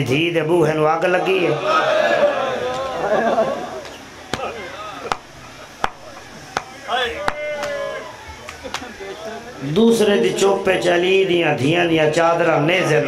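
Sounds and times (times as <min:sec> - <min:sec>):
sharp slaps: 0:05.1 - 0:07.8.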